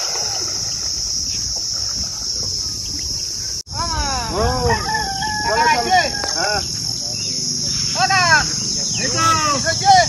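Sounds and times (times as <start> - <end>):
insect chorus buzzing: 0.0 - 10.0
person speaking: 9.1 - 9.6.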